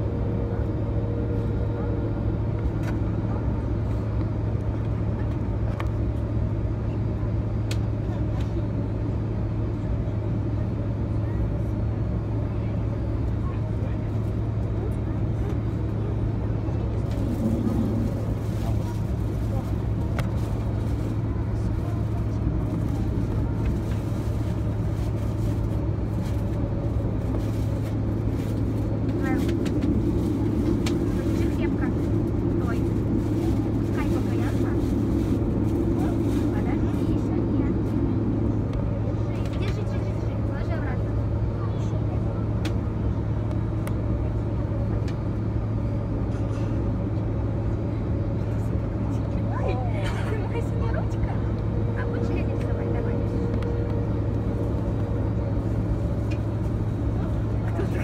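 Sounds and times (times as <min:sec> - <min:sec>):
jet engines idling hum: 0:00.0 - 0:58.0.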